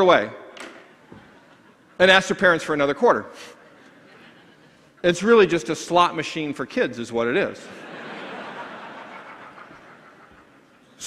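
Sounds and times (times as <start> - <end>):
audience laughing: 0.9 - 5.6, 7.5 - 11.0.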